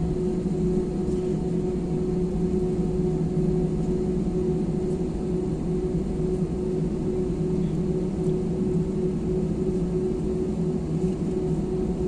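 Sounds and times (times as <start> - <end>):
constant whining tone: 0.0 - 12.0
jet engine cabin rumble: 0.0 - 12.0.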